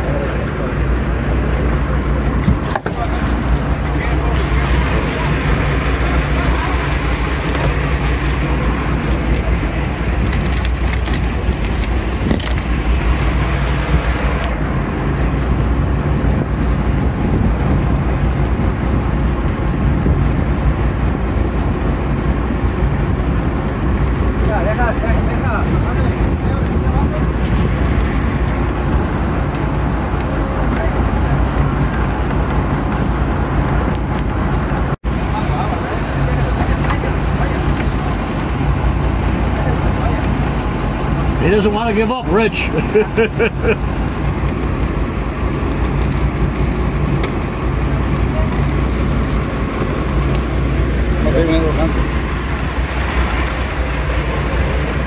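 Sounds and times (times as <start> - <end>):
boat engine droning: 0.0 - 55.0
rushing water: 0.0 - 55.0
wind: 0.0 - 55.0.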